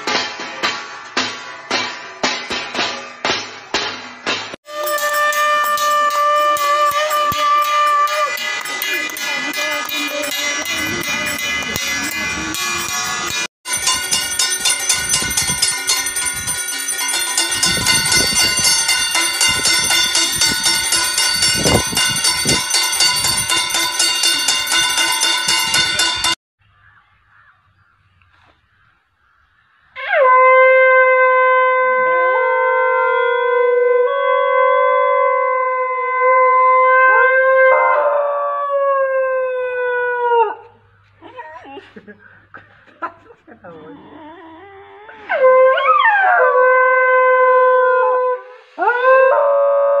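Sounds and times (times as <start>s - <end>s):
rhythmic metal banging: 0.0s - 26.4s
conch shell blown: 4.6s - 16.6s, 30.0s - 35.2s
horn-like notes: 4.7s - 13.5s.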